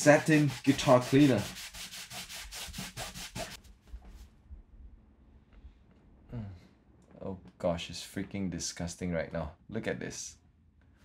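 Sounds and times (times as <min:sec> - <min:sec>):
cloth rubbing guitar top: 0:00.0 - 0:04.2.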